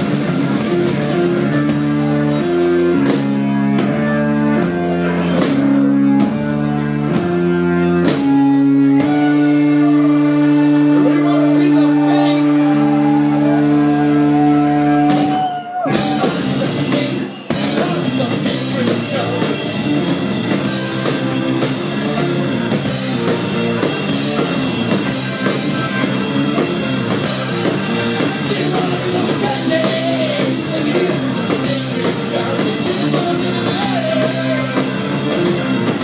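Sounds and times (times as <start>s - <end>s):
drum kit: 0.0s - 36.0s
keyboard chords: 0.0s - 36.0s.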